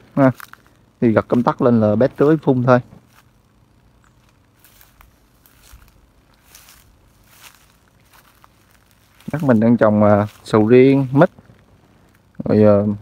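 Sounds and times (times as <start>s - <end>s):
footsteps through grass and leaves: 0.0s - 13.0s.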